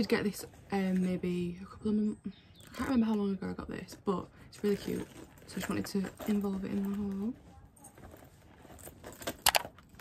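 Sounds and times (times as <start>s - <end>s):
faint handling noise: 2.5s - 10.0s
metal chain strap jingling: 4.6s - 7.2s, 7.8s - 10.0s.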